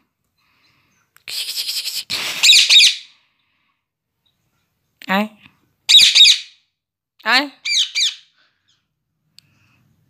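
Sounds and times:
parakeet chattering: 2.4s - 3.0s, 5.9s - 6.5s, 7.6s - 8.2s
parakeet shrill squawks: 2.4s - 3.1s, 5.9s - 6.6s, 7.6s - 8.3s.

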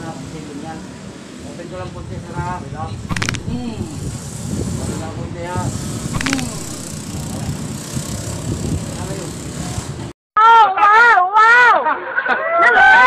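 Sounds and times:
steady low rumble: 2.0s - 9.9s
brief high-pitched sounds: 3.1s - 4.1s, 6.1s - 7.1s.

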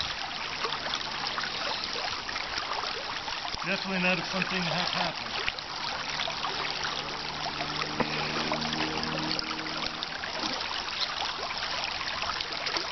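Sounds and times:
creek water trickling: 0.0s - 12.9s.

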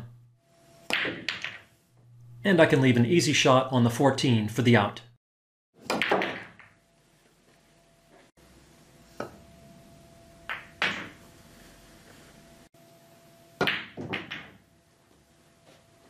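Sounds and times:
pool balls clacking: 0.9s - 1.8s, 5.8s - 6.8s, 10.5s - 11.3s, 13.6s - 14.7s
cue tip striking ball: 5.9s - 6.8s, 10.5s - 11.2s, 13.6s - 14.6s.

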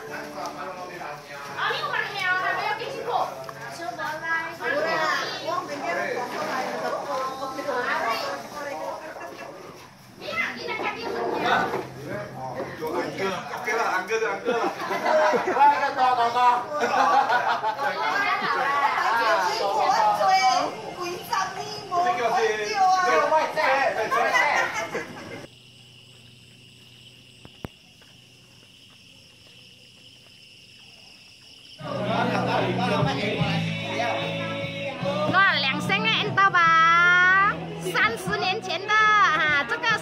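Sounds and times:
adults and children chattering: 0.0s - 25.5s, 29.3s - 40.0s
night insects chirring: 0.0s - 40.0s.

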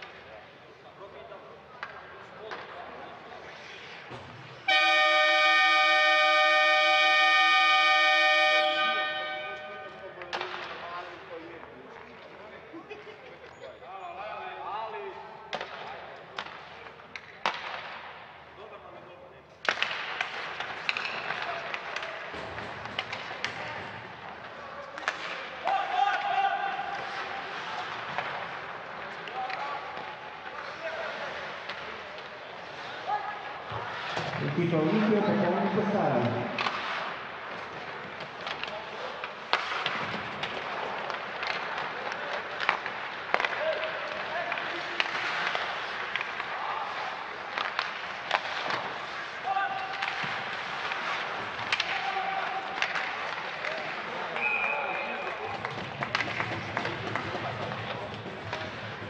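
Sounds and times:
ice rink horn blast: 4.6s - 10.1s.

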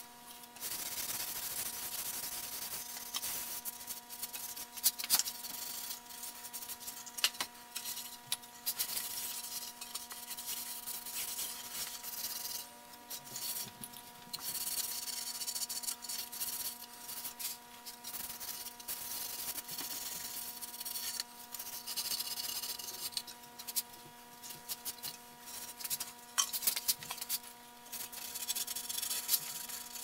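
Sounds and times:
steady electrical hum: 0.0s - 30.0s.

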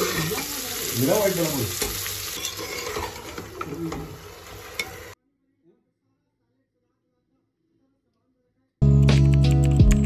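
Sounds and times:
food sizzling in oil: 0.0s - 5.2s
metal ladle scraping pot: 1.8s - 5.2s.

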